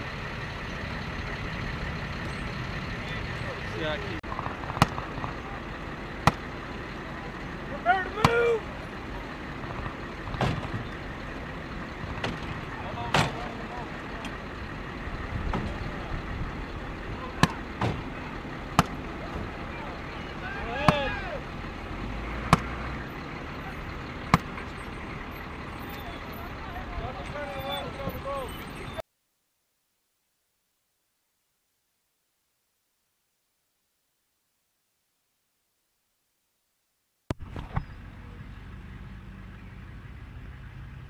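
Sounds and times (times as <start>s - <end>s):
diesel engines idling: 0.0s - 29.0s, 37.4s - 41.0s
voices: 0.1s - 29.0s.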